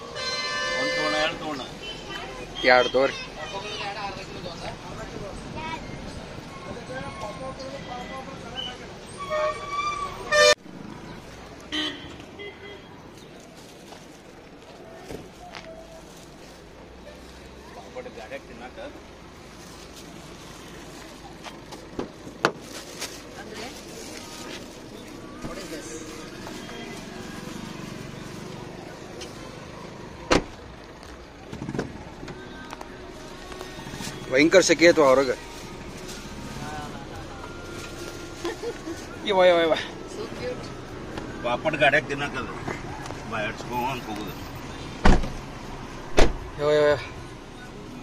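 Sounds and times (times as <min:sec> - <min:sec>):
vehicle horns honking: 0:00.0 - 0:03.3, 0:06.5 - 0:10.6, 0:11.7 - 0:13.0
car door slam: 0:30.3 - 0:30.6, 0:45.0 - 0:45.4, 0:46.1 - 0:46.4.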